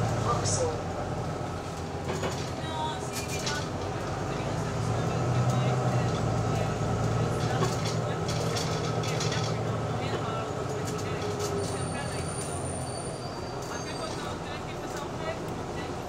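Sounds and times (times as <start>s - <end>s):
bus engine humming: 0.0s - 16.0s
interior rattles and clicks: 1.6s - 12.1s.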